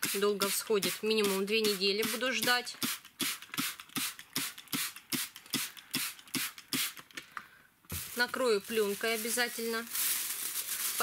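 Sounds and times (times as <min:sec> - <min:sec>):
spray bottle spritzing: 0:00.0 - 0:07.1.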